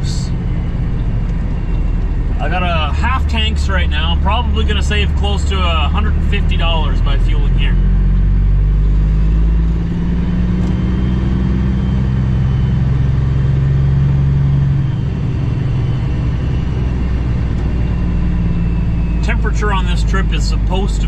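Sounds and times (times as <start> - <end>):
truck diesel engine drone: 0.0 - 21.0.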